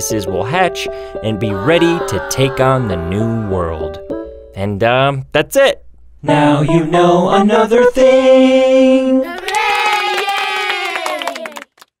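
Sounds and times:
person cheering: 0:01.3 - 0:03.9, 0:09.3 - 0:11.6
quick clapping: 0:09.4 - 0:12.0.

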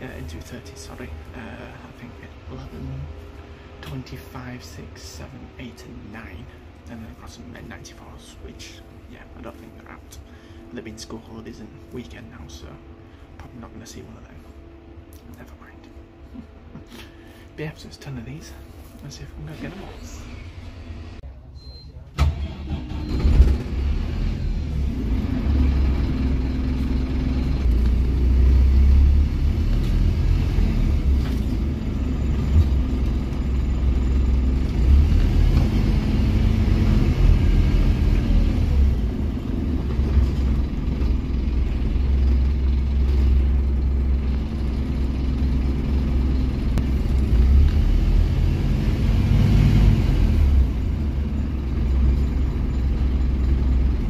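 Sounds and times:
bus engine drone: 0:00.0 - 0:54.0.

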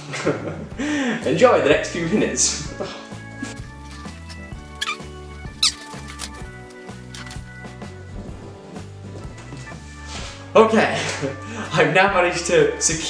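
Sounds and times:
background music: 0:00.0 - 0:13.0
rubber balloon squeaks: 0:03.7 - 0:07.3.

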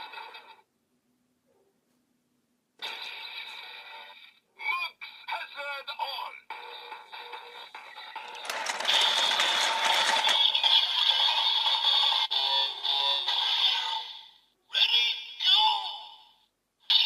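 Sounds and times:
toy belt electronic sound effects: 0:08.0 - 0:11.4.

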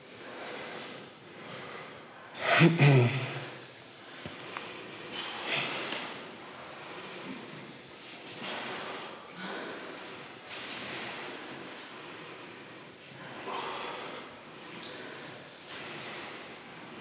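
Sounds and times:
breathing through face masks: 0:00.2 - 0:17.0.

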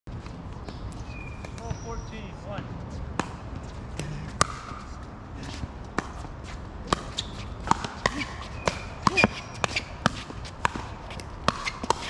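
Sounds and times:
voices talking: 0:01.6 - 0:02.7.

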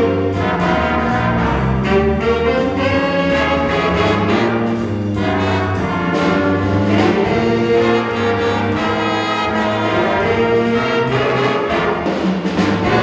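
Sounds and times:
drum kit steady beat: 0:00.0 - 0:13.0
jazz big band playing: 0:00.0 - 0:13.0.

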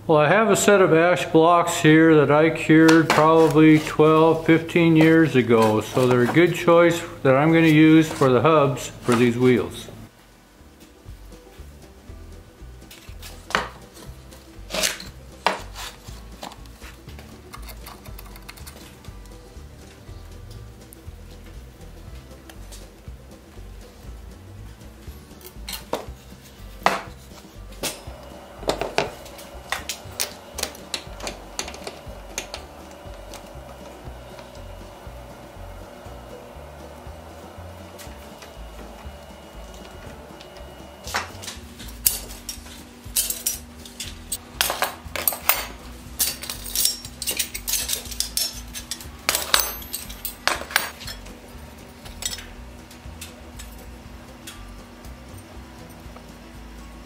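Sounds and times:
metal bands clinking: 0:41.9 - 0:51.3.

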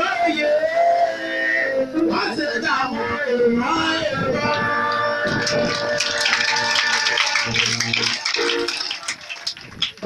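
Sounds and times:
group singing a cappella: 0:00.0 - 0:07.6.

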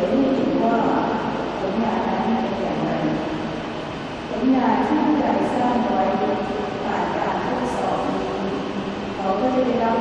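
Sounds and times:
woman speaking over public address: 0:00.0 - 0:03.5, 0:04.3 - 0:10.0
low rumble of room noise: 0:00.0 - 0:10.0.

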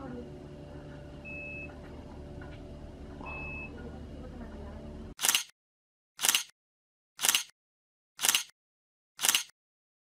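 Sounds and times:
low engine-like hum: 0:00.0 - 0:05.2.

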